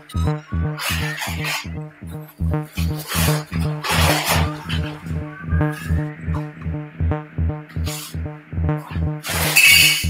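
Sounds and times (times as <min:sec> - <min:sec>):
hissy synthesizer noise: 0:00.0 - 0:10.0
pulsing low synthesizer note: 0:00.0 - 0:10.0.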